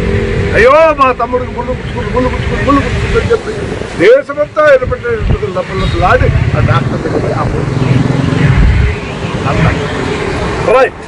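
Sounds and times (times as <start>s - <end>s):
motor vehicle rumble: 0.0s - 11.0s
man speaking: 0.5s - 8.1s.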